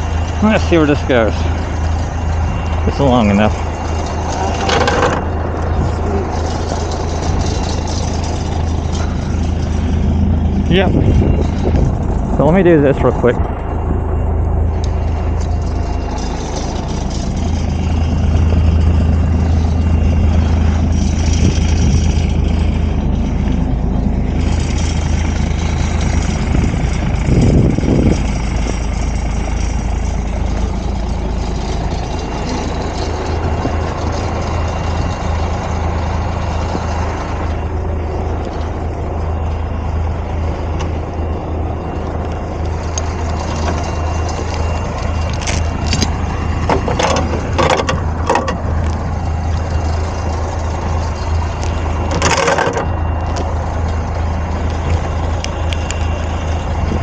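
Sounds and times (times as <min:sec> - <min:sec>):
diesel truck engine idling: 0:00.0 - 0:57.0.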